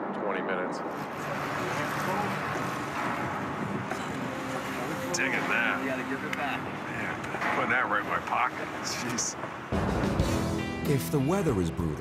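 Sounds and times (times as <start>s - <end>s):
machinery engine drone: 0.8s - 10.1s.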